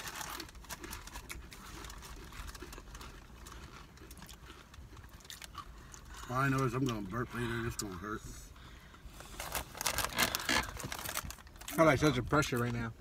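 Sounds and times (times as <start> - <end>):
crunching tortilla chips: 0.0 - 8.0, 9.3 - 12.9.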